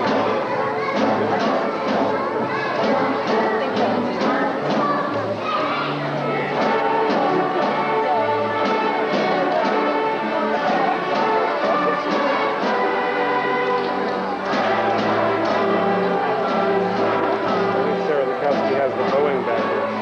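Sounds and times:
school orchestra playing: 0:00.0 - 0:20.0.

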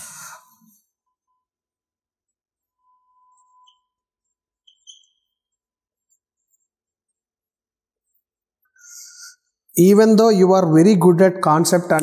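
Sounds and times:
marker squeaking on whiteboard: 0:02.1 - 0:09.7.

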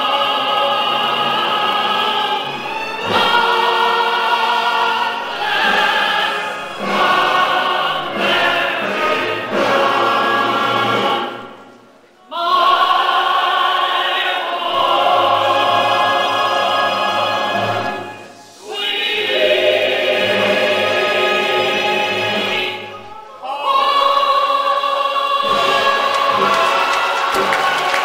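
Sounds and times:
group singing: 0:00.0 - 0:28.0.

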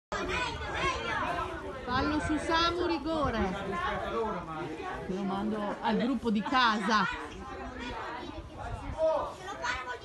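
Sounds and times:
people talking over one another: 0:00.1 - 0:10.0.

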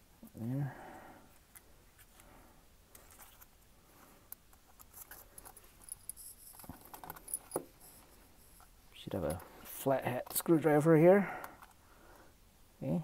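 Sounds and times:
plastic parts clicking and rustling: 0:04.3 - 0:10.7.

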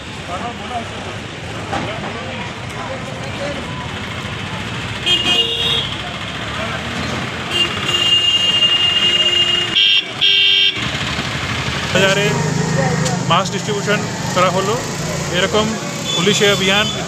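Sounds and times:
crowd chatter: 0:00.0 - 0:17.0
vehicle horns honking: 0:05.0 - 0:06.0, 0:07.4 - 0:11.1, 0:15.9 - 0:17.0.

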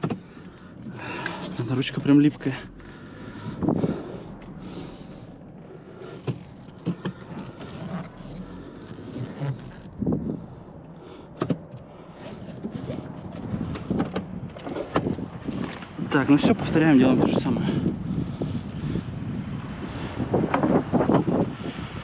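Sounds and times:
car controls clicking: 0:00.0 - 0:00.6, 0:11.3 - 0:11.9
car engine hum: 0:00.0 - 0:22.0.

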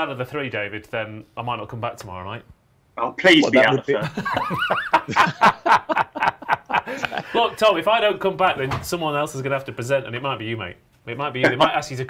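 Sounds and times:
man chuckling: 0:03.5 - 0:07.6, 0:11.4 - 0:11.8.

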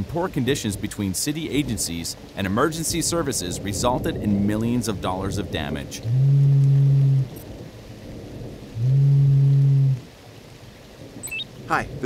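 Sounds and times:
rain: 0:00.0 - 0:12.0
phone ringing with low buzz: 0:06.1 - 0:07.2, 0:08.8 - 0:10.0.

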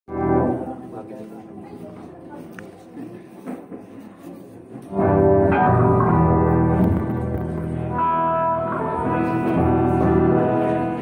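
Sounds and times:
live band playing: 0:04.9 - 0:11.0.

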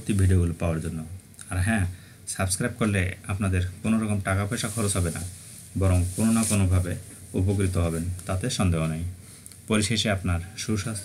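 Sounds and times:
faint steady hiss: 0:00.0 - 0:11.0
man narrating: 0:00.0 - 0:11.0.

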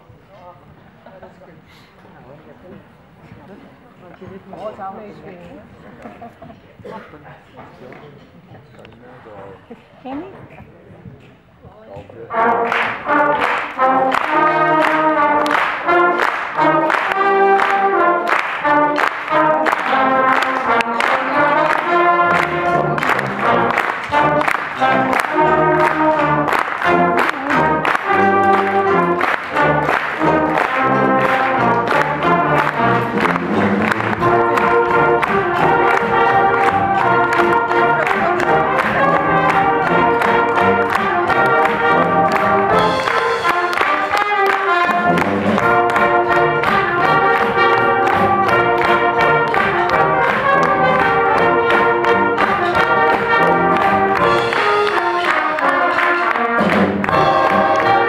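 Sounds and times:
brass band playing swing: 0:12.2 - 0:58.0.

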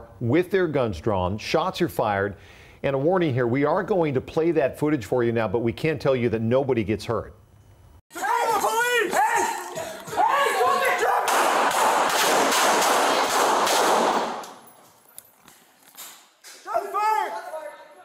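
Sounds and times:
shouted commands: 0:08.1 - 0:11.5, 0:16.6 - 0:18.0
people shouting: 0:08.1 - 0:11.9, 0:16.7 - 0:18.0
rapid gunfire: 0:11.2 - 0:14.4.

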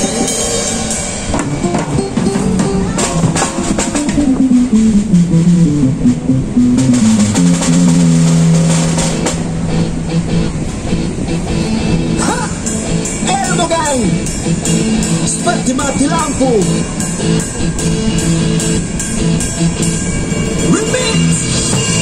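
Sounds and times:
acoustic drum kit playing: 0:00.0 - 0:22.0
backing track from speaker: 0:01.4 - 0:22.0.

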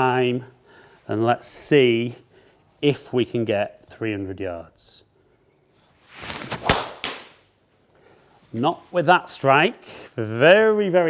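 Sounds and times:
golf club swishing: 0:05.8 - 0:07.5.

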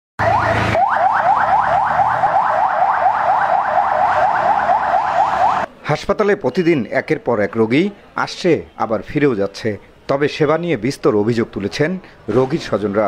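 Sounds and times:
ambulance siren yelping: 0:00.2 - 0:05.7.

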